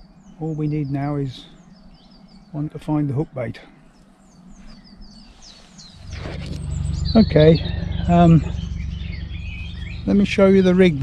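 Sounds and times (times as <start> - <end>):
small bird chirping: 0.0 - 11.0
loud low rumble: 6.0 - 11.0.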